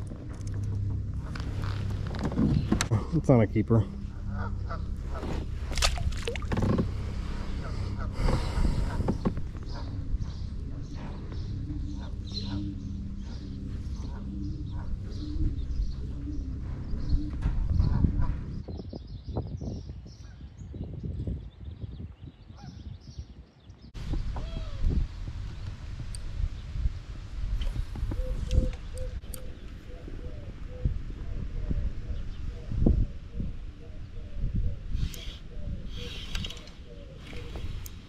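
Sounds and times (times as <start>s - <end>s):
birds calling: 0.0s - 25.7s, 26.6s - 38.0s.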